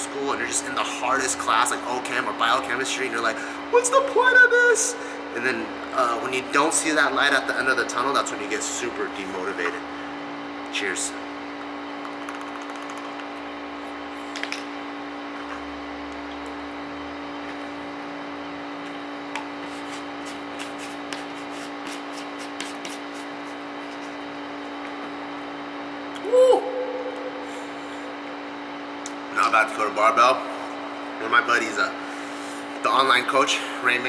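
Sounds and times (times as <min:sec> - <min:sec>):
steady mechanical hum: 0:00.0 - 0:34.0.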